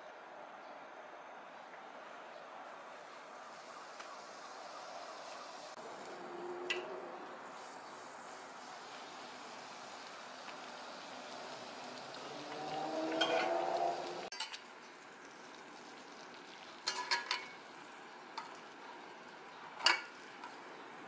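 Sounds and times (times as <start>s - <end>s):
donut sizzling in oil: 3.0s - 21.0s
metal turner clinking on pot: 16.8s - 17.6s.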